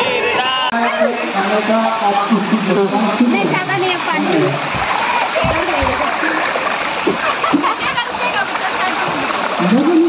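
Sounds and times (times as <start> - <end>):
people shouting and chattering: 0.0 - 10.0
water splashing: 1.0 - 10.0
low thumps: 4.6 - 6.2.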